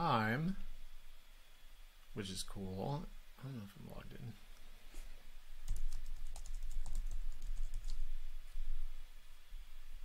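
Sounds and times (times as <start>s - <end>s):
typing on computer keyboard: 5.7s - 8.0s.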